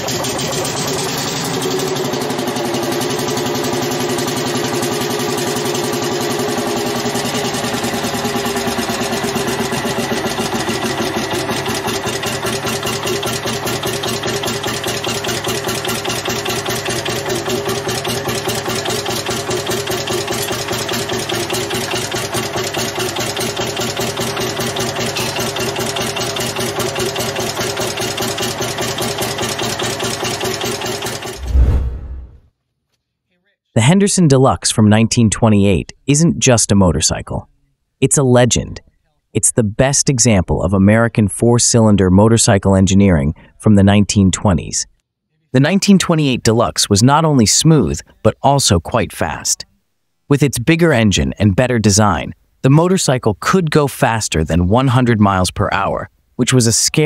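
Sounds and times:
tractor engine idling: 0:00.0 - 0:31.4.

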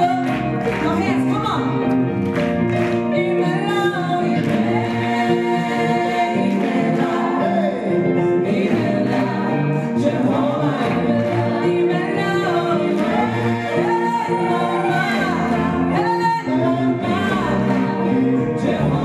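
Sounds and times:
gospel choir singing: 0:02.4 - 0:19.0.

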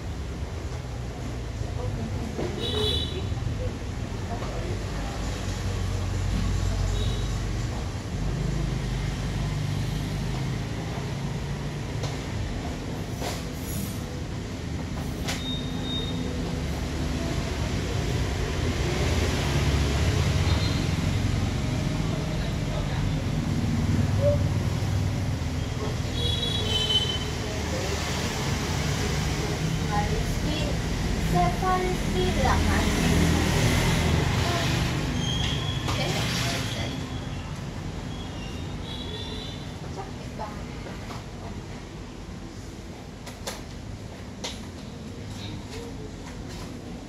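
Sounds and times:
road traffic rumble: 0:00.0 - 0:47.0.

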